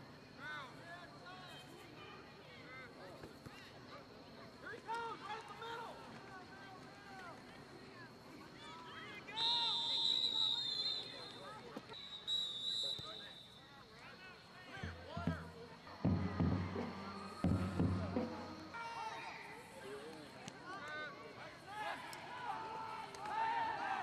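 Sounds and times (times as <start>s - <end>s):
murmur of voices: 0.0s - 24.0s
referee's whistle blasts: 9.3s - 13.7s.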